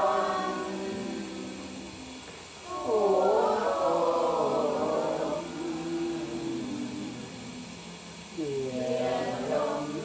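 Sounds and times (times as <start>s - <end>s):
group chanting in unison: 0.0s - 10.0s.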